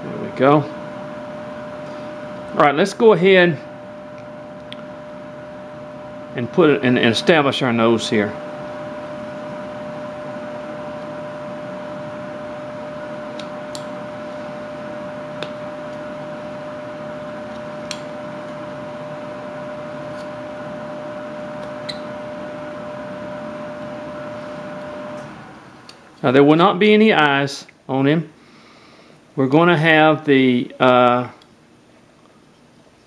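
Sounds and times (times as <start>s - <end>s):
mechanical hum: 0.0s - 33.0s.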